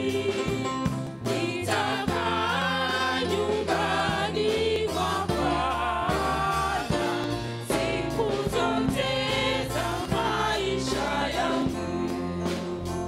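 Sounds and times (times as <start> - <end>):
bass guitar: 0.0 - 13.0
drum hits: 0.0 - 13.0
group singing a gospel song: 0.0 - 13.0.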